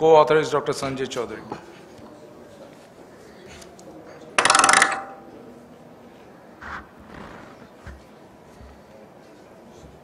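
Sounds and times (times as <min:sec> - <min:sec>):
speech: 0:00.0 - 0:04.4.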